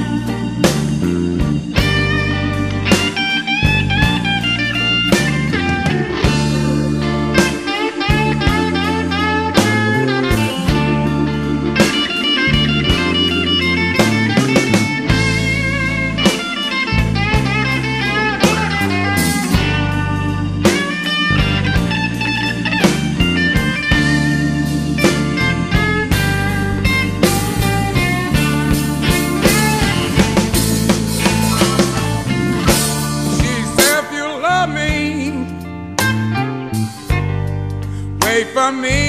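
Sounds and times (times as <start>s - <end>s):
steady drums: 0.0s - 34.2s
electric guitar lead with bent notes: 0.0s - 39.0s
low bass notes: 0.0s - 39.0s.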